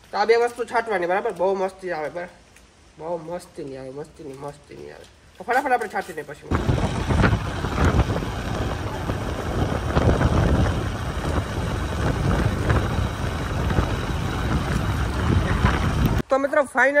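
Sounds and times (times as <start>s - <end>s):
motorcycle engine running: 6.5s - 16.2s
wind buffeting microphone: 6.5s - 16.2s.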